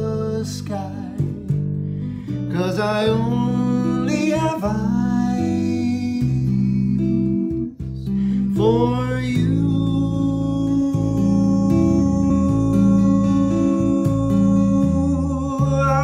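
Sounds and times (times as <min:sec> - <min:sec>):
man singing: 0:00.0 - 0:16.0
tapped stringboard bass and chords: 0:00.0 - 0:16.0.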